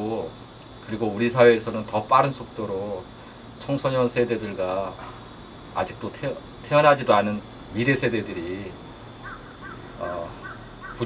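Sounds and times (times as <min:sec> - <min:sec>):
low room hum: 0:00.0 - 0:11.0
bird chirping: 0:09.2 - 0:11.0.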